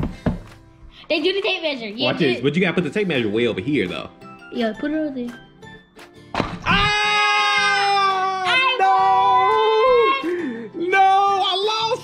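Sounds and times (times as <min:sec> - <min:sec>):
music: 0:00.0 - 0:12.0
long drawn-out yell: 0:06.7 - 0:10.3
excited shouting: 0:06.7 - 0:12.0.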